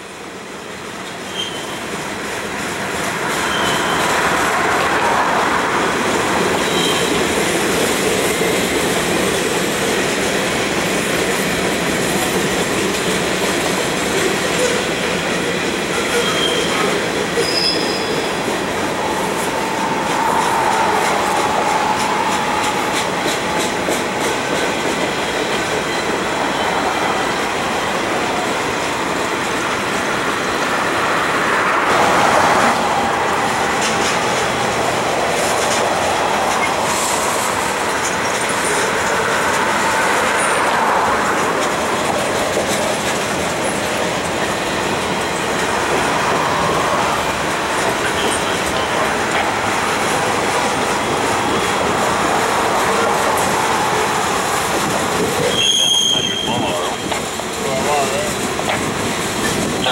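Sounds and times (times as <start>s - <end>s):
freight cars rolling on rails: 0.4s - 59.9s
thin wheel squeals: 1.3s - 1.8s, 3.4s - 4.0s, 17.4s - 18.3s, 55.5s - 56.6s.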